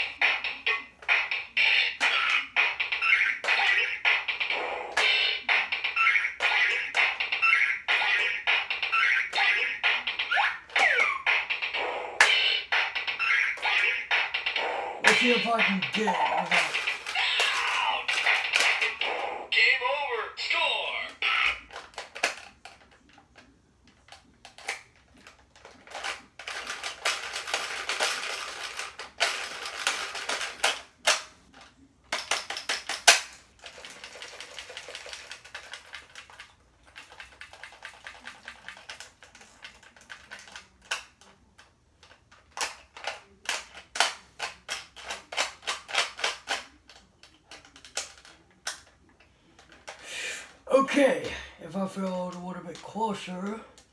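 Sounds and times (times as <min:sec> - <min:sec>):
plastic toy clicking and rattling: 0:00.0 - 0:19.7, 0:21.1 - 0:50.6.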